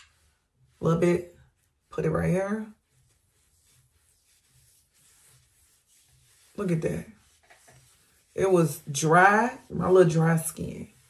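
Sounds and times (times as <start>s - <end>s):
skin rubbing on skin: 0.0s - 11.0s.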